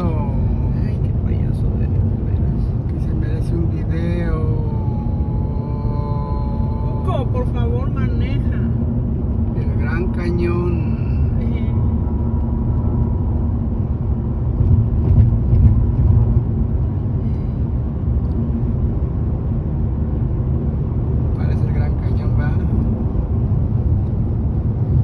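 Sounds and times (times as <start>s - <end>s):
car road and engine rumble: 0.0s - 25.0s.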